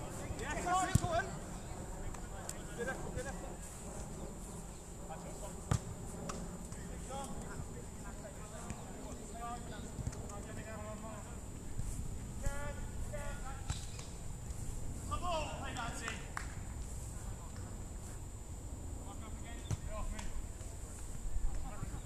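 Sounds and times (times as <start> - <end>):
players shouting calls: 15.1 - 16.3.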